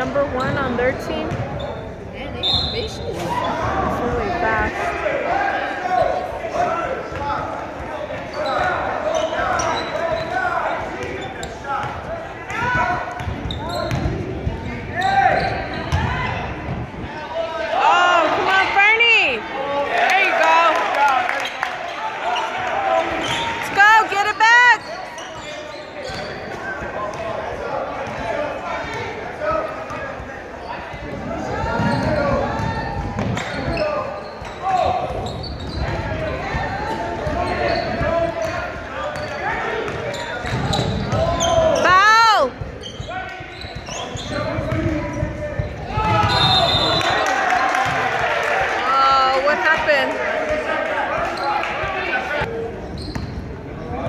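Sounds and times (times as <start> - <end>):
crowd voices: 0.0 - 54.0
basketball bouncing: 0.1 - 1.6, 11.0 - 14.7, 31.5 - 33.7, 34.4 - 42.8, 43.4 - 46.5, 47.8 - 48.2
sneakers squeaking on hardwood: 0.1 - 3.9, 7.1 - 16.3, 23.2 - 27.3, 30.6 - 47.0, 51.1 - 52.0, 52.8 - 54.0.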